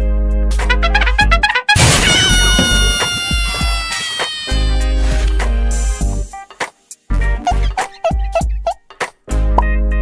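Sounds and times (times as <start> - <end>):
background music with bass: 0.0 - 1.7, 4.6 - 10.0
sudden hit: 1.8 - 3.9
wailing call sliding down: 2.2 - 5.4.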